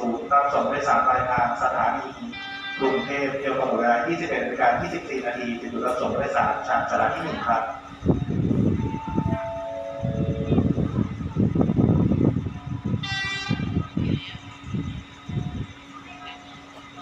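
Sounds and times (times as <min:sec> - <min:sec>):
low uneven train rumble: 0:00.0 - 0:17.0
train horn blast: 0:02.2 - 0:03.8, 0:13.0 - 0:14.1.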